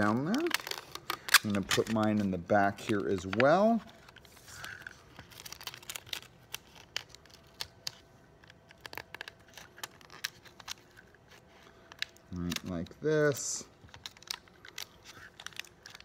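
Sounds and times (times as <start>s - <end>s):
adhesive tape crinkling: 0.0s - 16.0s.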